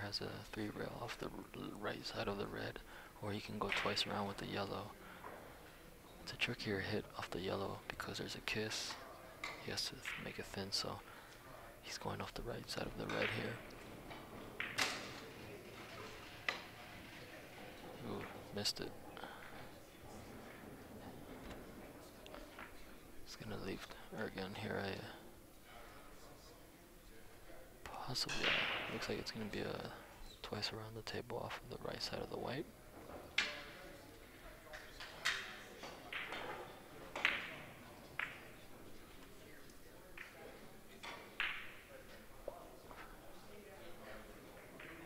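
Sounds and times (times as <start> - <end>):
billiard balls clacking: 12.6 - 23.0, 34.8 - 41.9.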